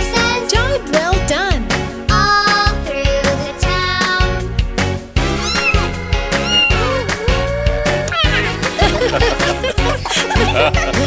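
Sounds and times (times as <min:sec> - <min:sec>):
upbeat children's music: 0:00.0 - 0:11.0
cartoon cat meowing: 0:05.3 - 0:08.7.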